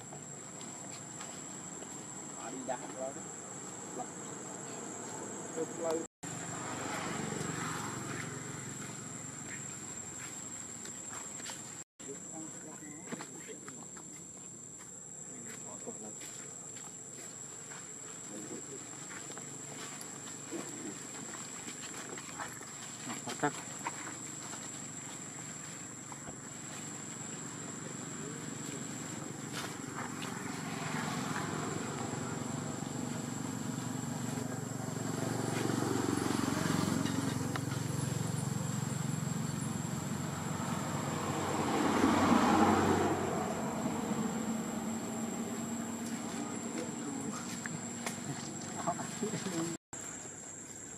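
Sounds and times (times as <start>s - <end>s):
high-pitched insect drone: 0.0s - 50.7s.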